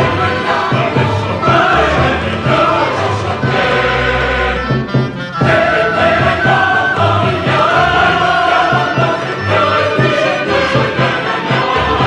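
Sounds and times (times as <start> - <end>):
chamber ensemble playing: 0.0 - 12.0
mixed choir singing: 0.0 - 12.0.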